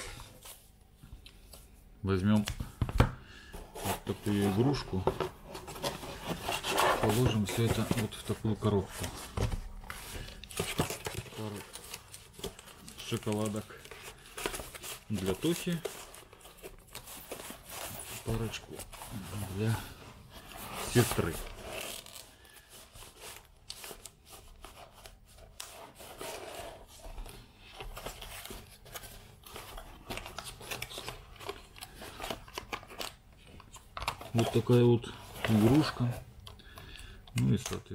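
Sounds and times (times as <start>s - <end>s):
cardboard and wrappers crinkling: 3.8s - 37.9s.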